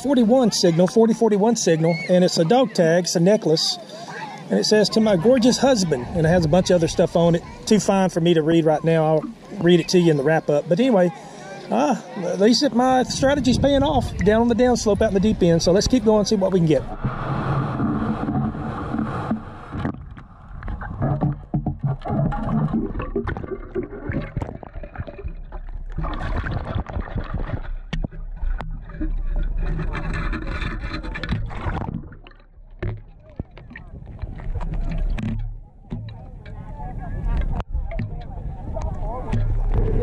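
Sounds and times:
water sloshing: 0:13.9 - 0:40.0.

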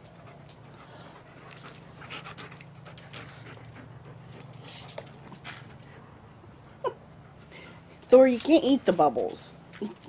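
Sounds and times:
dog panting: 0:00.0 - 0:06.2.

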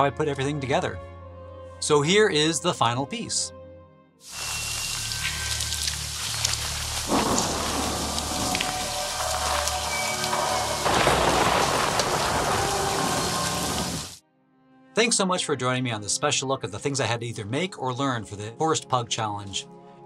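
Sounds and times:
rain pouring: 0:04.3 - 0:14.2
low music drone: 0:04.4 - 0:14.1.

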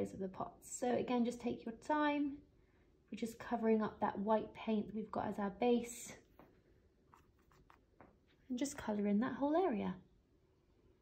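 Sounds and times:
paintbrush scratching on canvas: 0:07.1 - 0:07.9.

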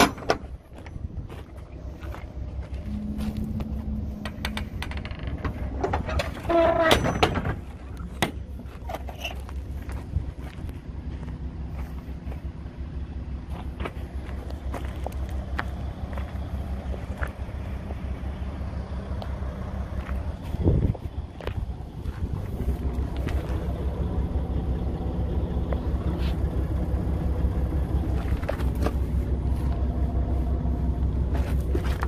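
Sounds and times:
outdoor background rumble: 0:00.0 - 0:32.0
footsteps on gravel: 0:00.4 - 0:04.2, 0:08.4 - 0:12.7, 0:13.4 - 0:18.1, 0:19.9 - 0:23.8, 0:31.3 - 0:32.0.

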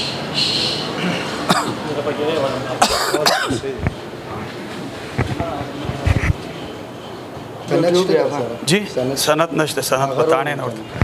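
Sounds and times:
harsh coughs: 0:01.0 - 0:01.8, 0:02.8 - 0:03.7.

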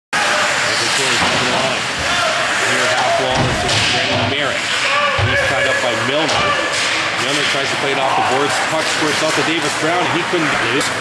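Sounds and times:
hockey game arena noise: 0:00.1 - 0:11.0.

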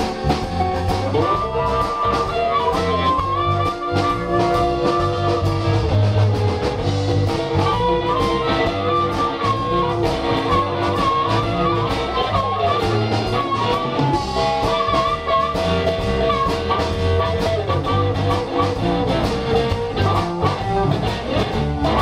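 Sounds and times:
bass guitar: 0:00.0 - 0:22.0
drums: 0:00.0 - 0:22.0
electric guitar bending notes: 0:00.0 - 0:22.0.

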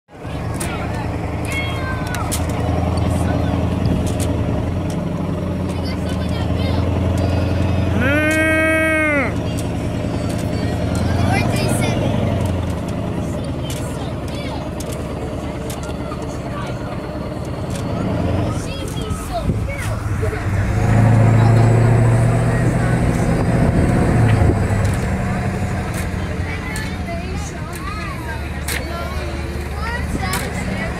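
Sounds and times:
monster truck engine running: 0:00.1 - 0:30.9.

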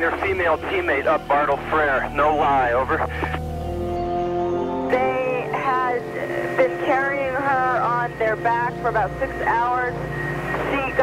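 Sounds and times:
background music with held tone: 0:00.0 - 0:11.0.

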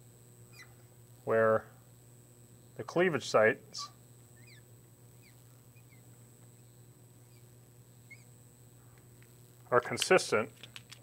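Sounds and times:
steady low hum: 0:00.0 - 0:11.0
marker squeaking on glass: 0:08.1 - 0:08.3.

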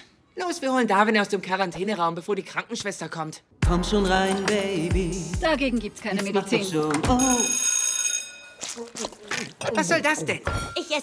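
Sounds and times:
bell-like ringing tone: 0:07.2 - 0:08.8.

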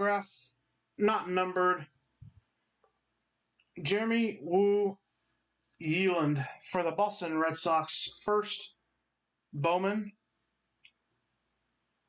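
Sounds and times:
person speaking: 0:00.0 - 0:02.0, 0:03.6 - 0:05.1, 0:05.7 - 0:08.8, 0:09.5 - 0:10.2.

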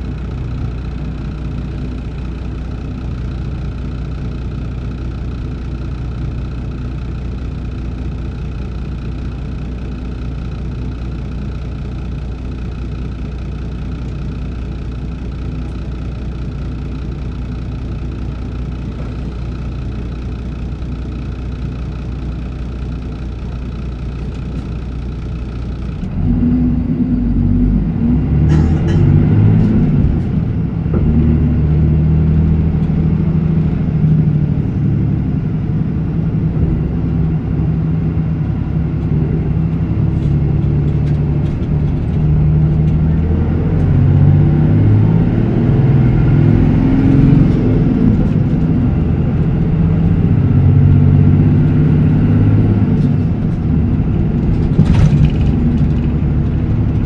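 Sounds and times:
bus diesel engine: 0:00.0 - 0:57.0.

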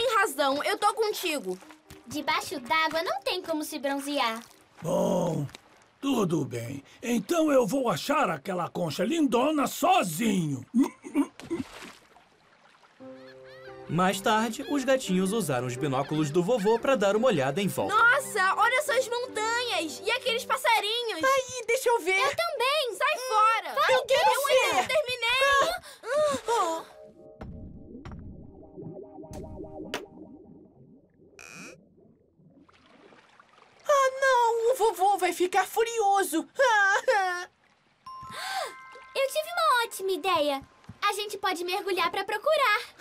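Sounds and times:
cartoon bubbly glides: 0:27.7 - 0:33.9.

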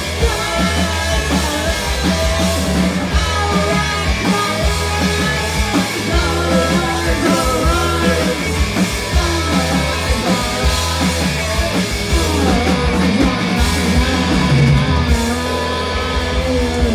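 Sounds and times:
electric guitars: 0:00.0 - 0:16.9
live rock band playing: 0:00.0 - 0:16.9
vocals: 0:00.0 - 0:16.9.

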